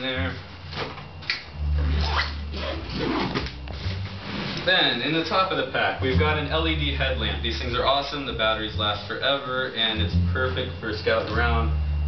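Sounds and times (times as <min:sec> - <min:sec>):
low rumble: 0:01.5 - 0:12.0.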